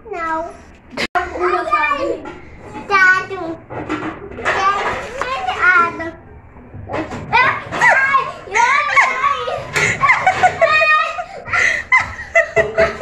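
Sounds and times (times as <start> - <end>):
young children chattering: 0.0 - 11.7.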